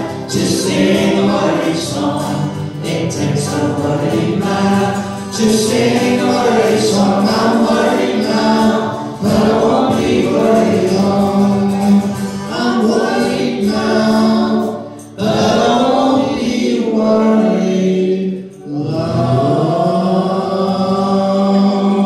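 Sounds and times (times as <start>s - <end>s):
banjo: 0.0s - 19.9s
acoustic guitars: 0.0s - 22.0s
voices singing in harmony: 0.0s - 22.0s.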